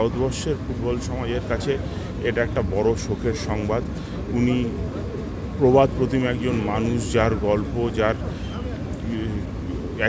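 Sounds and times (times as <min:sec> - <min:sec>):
man speaking: 0:00.0 - 0:04.8, 0:05.6 - 0:08.3, 0:09.0 - 0:10.0.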